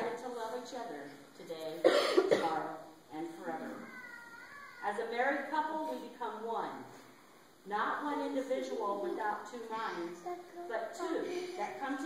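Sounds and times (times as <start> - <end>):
person coughing: 1.8 - 2.6.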